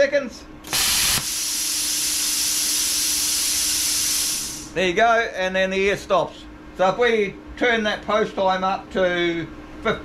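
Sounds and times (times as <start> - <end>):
compressed air hissing: 0.6 - 4.8
plasma torch arc burst: 0.7 - 4.8.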